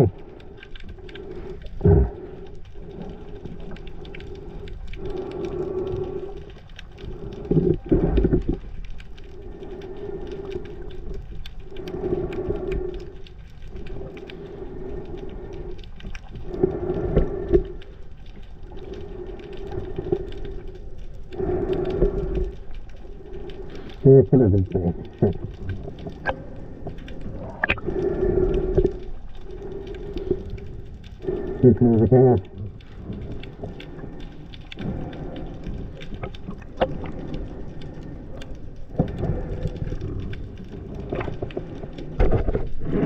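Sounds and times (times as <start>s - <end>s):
low mechanical hum underwater: 0.0s - 43.0s
water surging against camera housing: 0.0s - 43.0s.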